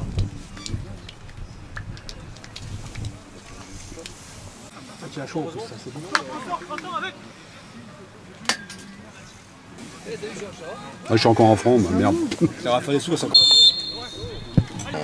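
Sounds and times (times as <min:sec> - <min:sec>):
faint overlapping voices: 0:00.0 - 0:15.0.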